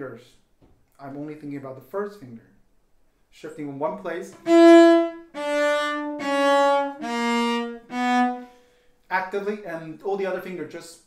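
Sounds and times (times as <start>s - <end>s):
bowed cello notes: 4.3s - 8.6s.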